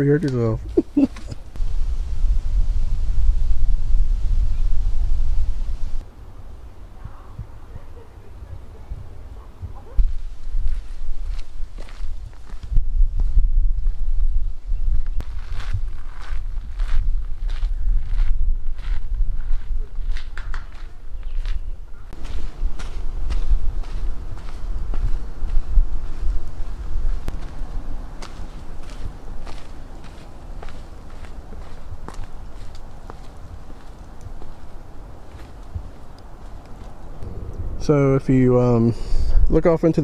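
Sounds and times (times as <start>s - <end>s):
low rumble: 1.6s - 6.1s, 36.8s - 40.0s
footsteps crunching on gravel: 10.0s - 13.4s, 15.2s - 37.0s.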